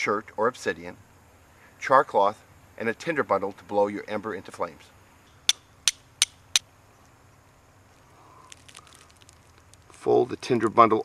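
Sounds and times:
steel striker hitting flint: 5.5 - 6.6
crackly rustling of dry tinder: 7.8 - 10.8.

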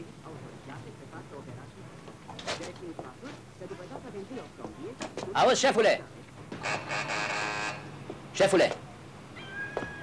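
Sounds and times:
harsh steady buzz: 6.5 - 8.2.

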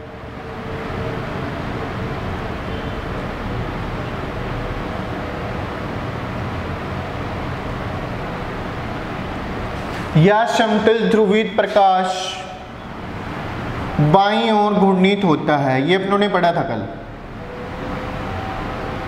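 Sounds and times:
rushing room noise: 0.0 - 19.0
person speaking: 10.1 - 12.7, 14.0 - 17.0.

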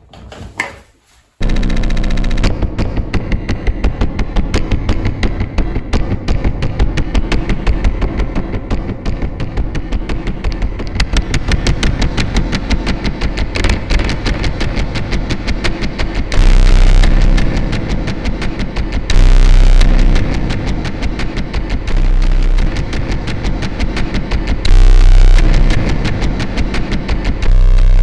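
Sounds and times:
distorted fuzz noise: 1.4 - 28.0
rapid distorted clicks: 1.4 - 28.0.

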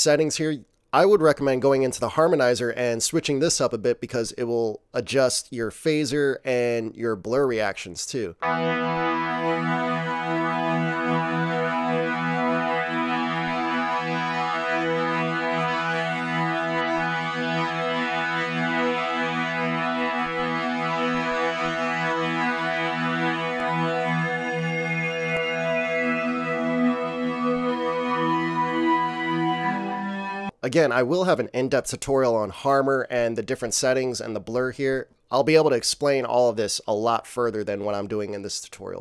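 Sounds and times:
sustained synth pad chord: 8.4 - 30.5.

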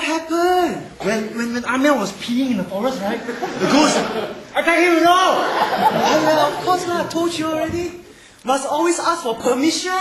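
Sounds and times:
actors speaking exaggeratedly: 2.6 - 10.0.

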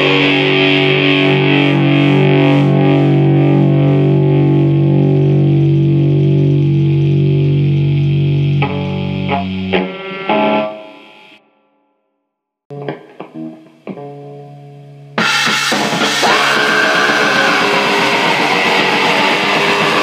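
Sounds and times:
distorted electric guitar chords: 0.0 - 11.8, 12.7 - 20.0.

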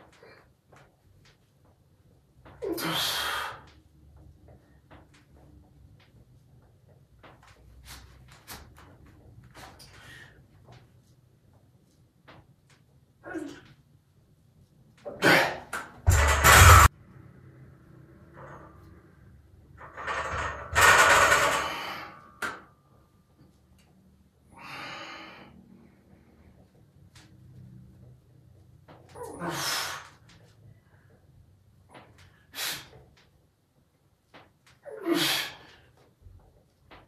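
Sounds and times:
man straining breaths: 2.7 - 3.8, 24.4 - 26.1, 29.2 - 31.1.

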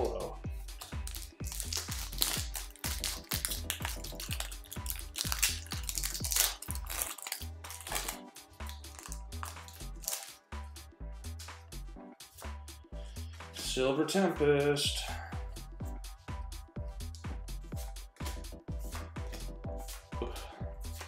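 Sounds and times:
background music with bass beat: 0.0 - 21.0
foil pack crinkling: 0.9 - 10.4.

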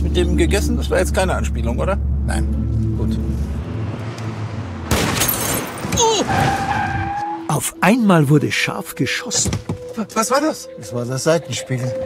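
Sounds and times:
car humming: 0.0 - 7.4
loud gunshot: 4.9 - 5.9.

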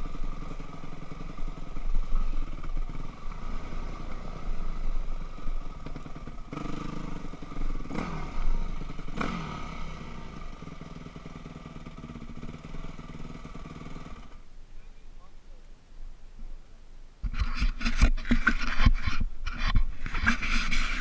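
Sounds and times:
dirt bike engine idling: 0.0 - 15.1
engine rev blips: 5.8 - 13.0.

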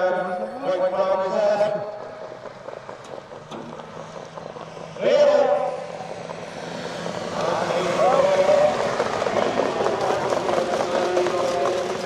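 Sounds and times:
car engine driving past: 0.9 - 12.0.

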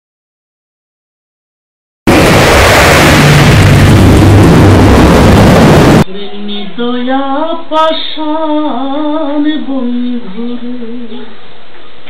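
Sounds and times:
low hum: 2.1 - 6.0
steady rushing noise: 2.1 - 6.0.

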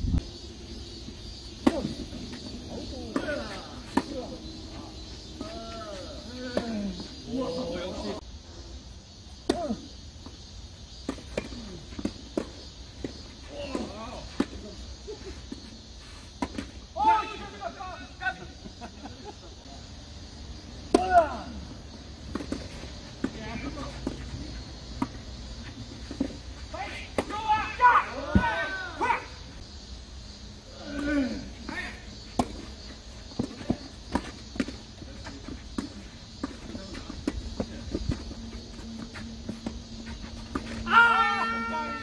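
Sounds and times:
players calling out: 1.6 - 8.2, 13.4 - 15.6, 20.8 - 29.6, 30.6 - 32.8, 34.9 - 42.0
rackets striking tennis ball: 32.3 - 32.8.

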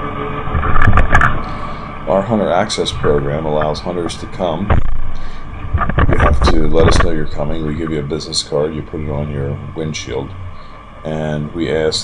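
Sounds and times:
tractor engine running: 0.0 - 12.0
sharp clacks and knocks: 4.6 - 5.0, 5.6 - 7.2.

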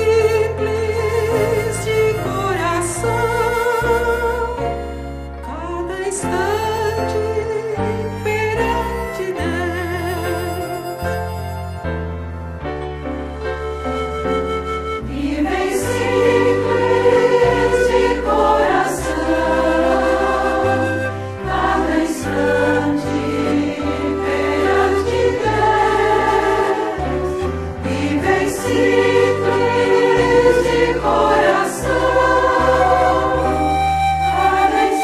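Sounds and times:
choir singing a hymn: 0.0 - 4.6, 14.8 - 35.0
instrumental accompaniment: 0.0 - 35.0.

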